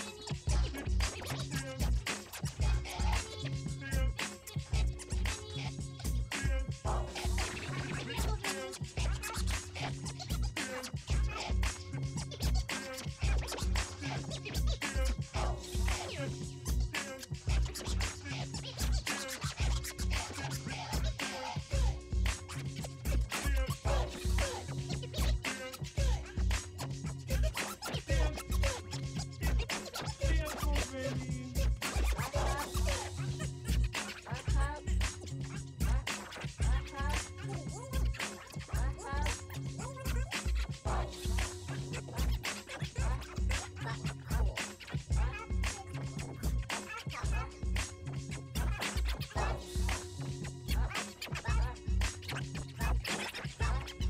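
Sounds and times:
dj scratching: 0:00.0 - 0:54.0
heavy bass beat: 0:00.0 - 0:54.0
dance beat with punchy bass drum: 0:29.4 - 0:35.2.

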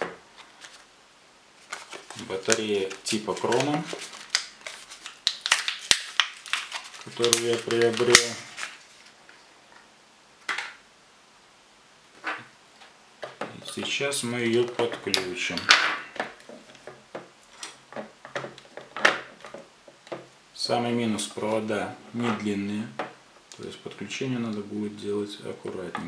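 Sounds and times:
blister pack being torn open: 0:01.6 - 0:08.8.

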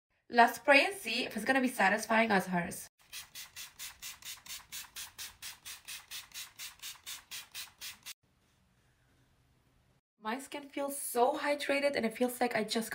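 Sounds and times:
spray bottle puffs: 0:03.0 - 0:08.2.

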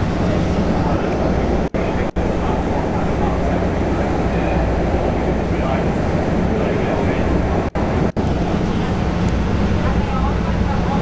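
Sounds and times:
train rumbling and rushing: 0:00.0 - 0:11.0.

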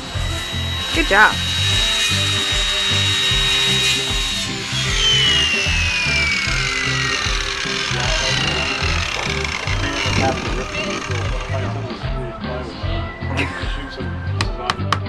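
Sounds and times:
circular saw whining: 0:00.0 - 0:12.9
background music with steady beat: 0:00.0 - 0:15.0.

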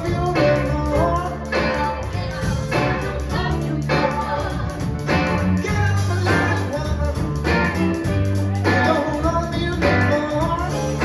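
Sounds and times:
live rock band playing: 0:00.0 - 0:11.0
man singing: 0:00.0 - 0:11.0.

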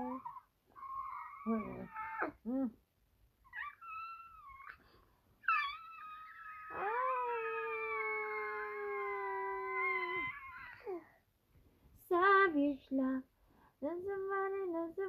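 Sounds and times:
baby squealing: 0:03.5 - 0:04.8, 0:05.4 - 0:10.9.

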